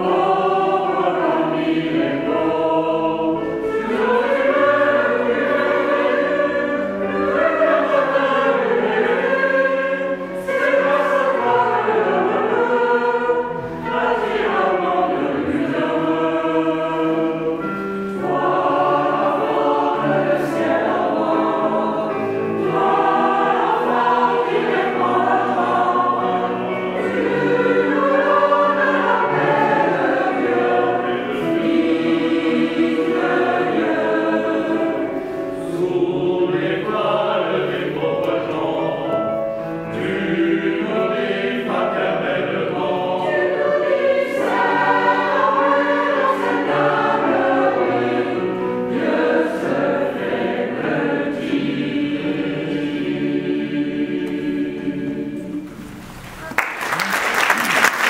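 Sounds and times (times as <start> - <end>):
mixed choir singing: 0.0 - 56.2.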